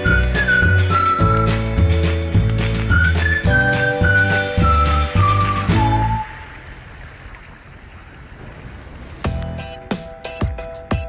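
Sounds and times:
whistled tune: 0.0s - 6.6s
floodwater rushing across road: 0.2s - 9.8s.

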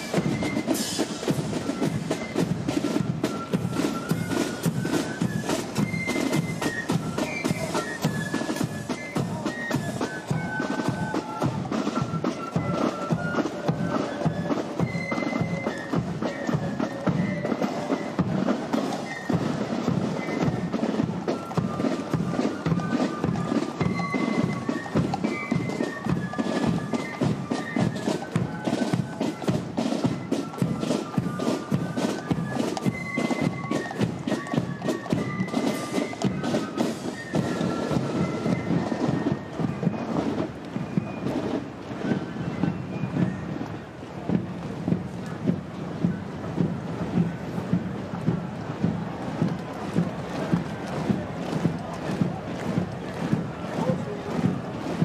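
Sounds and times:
high woodwind melody: 0.0s - 55.0s.

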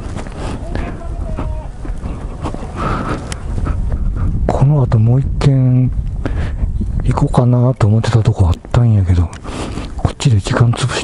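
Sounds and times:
motorcycle engine rumbling: 0.0s - 7.7s
wind buffeting microphone: 0.0s - 11.0s.

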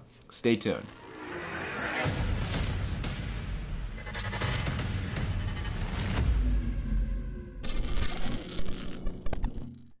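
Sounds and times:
stuttering electronic glitch: 0.8s - 3.2s, 3.8s - 6.2s.

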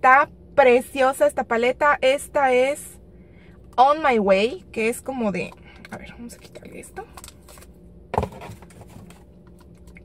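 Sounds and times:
plastic case knock: 8.1s - 8.6s.

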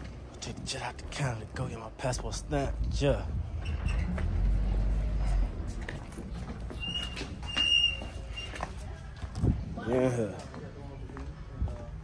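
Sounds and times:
footsteps walking: 2.8s - 11.9s.

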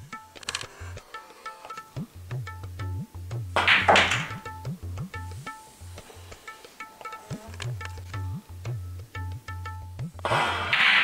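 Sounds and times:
tabla music: 0.0s - 11.0s
cue and pool balls clacking: 3.6s - 4.6s, 10.2s - 11.0s.

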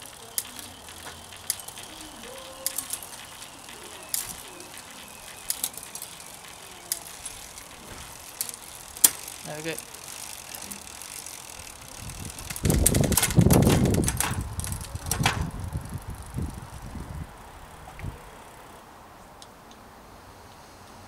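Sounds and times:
bicycle chain running: 0.0s - 18.8s.

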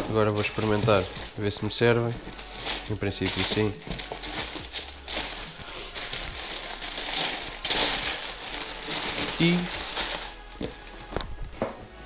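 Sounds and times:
paper crinkling in cardboard box: 0.0s - 11.4s.

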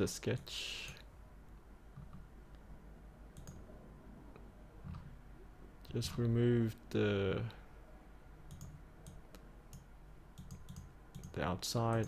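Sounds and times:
faint low hum: 0.0s - 12.0s
computer mouse clicks: 3.4s - 3.6s, 8.5s - 12.0s.

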